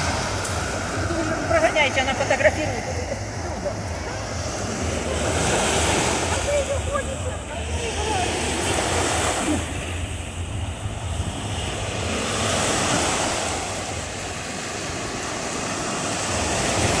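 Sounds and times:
waves washing up a sandy beach: 0:00.0 - 0:17.0
wind rumbling on microphone: 0:00.0 - 0:17.0.

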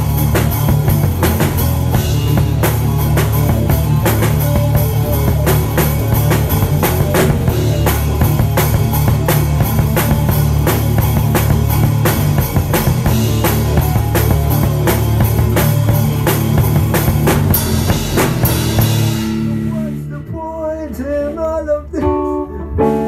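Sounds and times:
drums and cymbals: 0:00.0 - 0:20.2
rock band playing live: 0:00.0 - 0:23.0.

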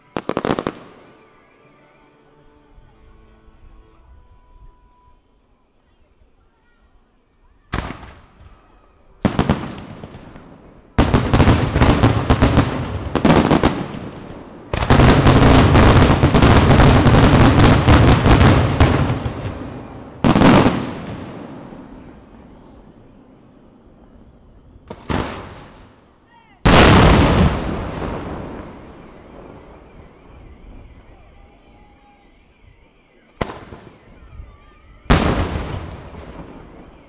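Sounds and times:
fireworks bangs and crackling: 0:00.0 - 0:01.3, 0:07.6 - 0:37.0.

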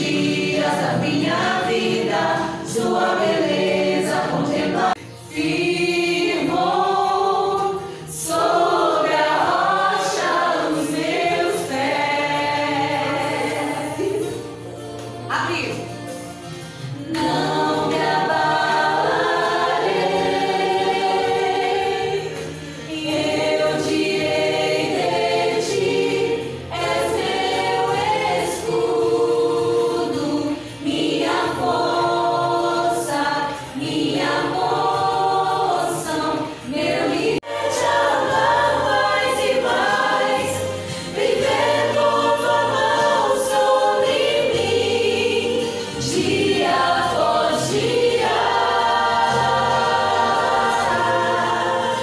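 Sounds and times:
church choir singing: 0:00.0 - 0:15.0, 0:16.1 - 0:52.0
choir breaths: 0:04.6 - 0:10.8, 0:16.4 - 0:52.0.

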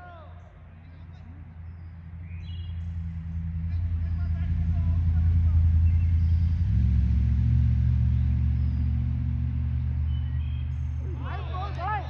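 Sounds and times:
motor engine rumbling: 0:00.0 - 0:12.0.

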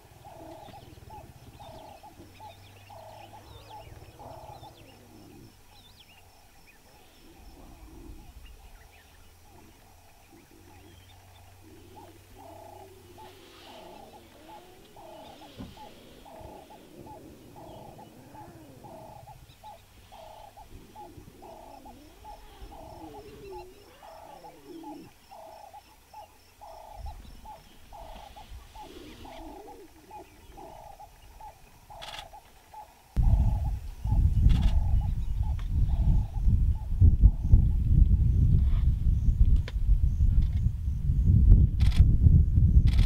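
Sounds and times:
lion cubs growling and grunting: 0:00.0 - 0:37.8.

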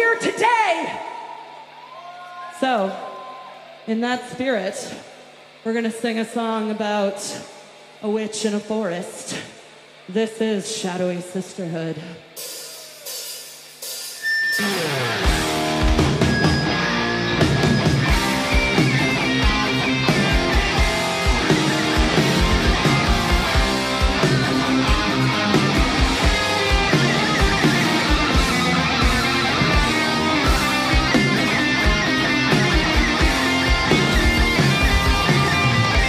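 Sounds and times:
heavy metal band playing live: 0:12.3 - 0:36.0.

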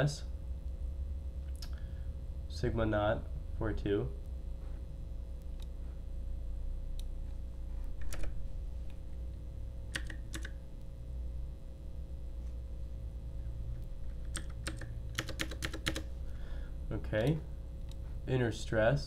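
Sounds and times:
low steady hum: 0:00.0 - 0:19.0
keyboard keystrokes: 0:09.9 - 0:10.6, 0:14.2 - 0:16.1.

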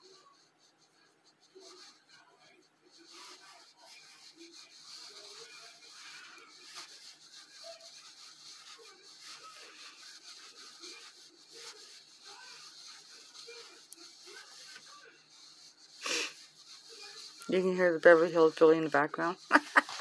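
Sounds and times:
television in background: 0:00.0 - 0:20.0
yarn rustling on crochet hook: 0:00.0 - 0:20.0.

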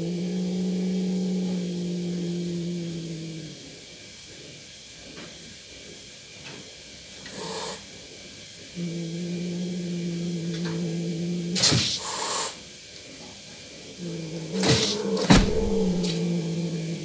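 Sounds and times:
cat growling yowl: 0:00.0 - 0:03.8, 0:07.3 - 0:07.8, 0:08.8 - 0:12.6, 0:13.9 - 0:17.0
cat hissing spit: 0:07.3 - 0:07.8, 0:11.5 - 0:12.6, 0:14.6 - 0:16.5.

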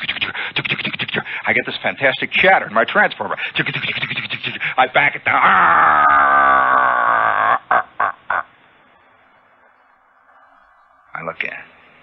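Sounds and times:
short vocal bursts: 0:00.0 - 0:01.5
radio recording hiss: 0:00.0 - 0:05.4, 0:07.6 - 0:12.0.

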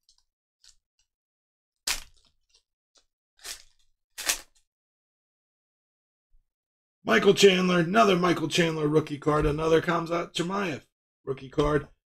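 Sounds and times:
foil wrapper tearing and crinkling: 0:01.9 - 0:02.4, 0:03.4 - 0:04.6.

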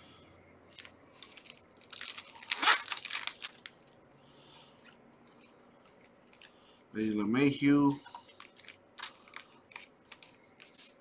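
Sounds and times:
foil wrapper crinkling and tearing: 0:00.8 - 0:04.0.

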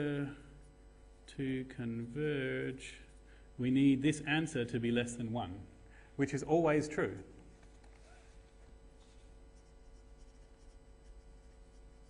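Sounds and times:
pen scratching on paper: 0:09.5 - 0:12.0.

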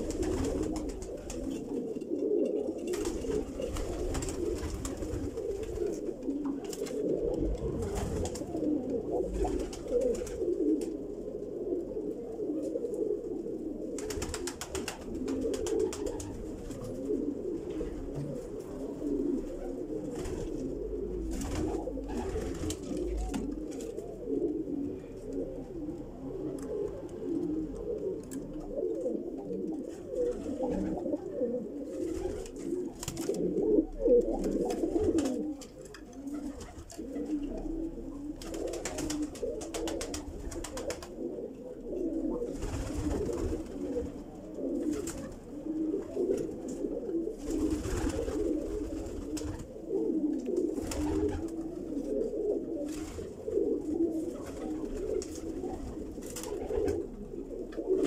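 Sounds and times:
pigeons cooing: 0:00.0 - 0:58.0.

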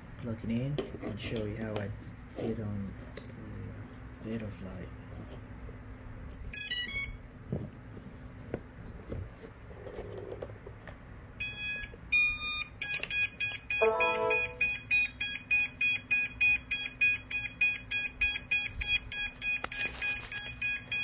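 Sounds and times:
electronic buzzer beeping: 0:13.7 - 0:14.8
short lower tone: 0:13.8 - 0:14.8.

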